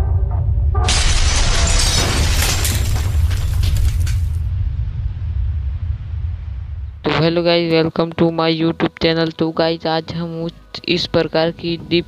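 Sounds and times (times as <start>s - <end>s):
deep rumble: 0.0s - 7.8s
crash of shattering debris: 0.8s - 4.5s.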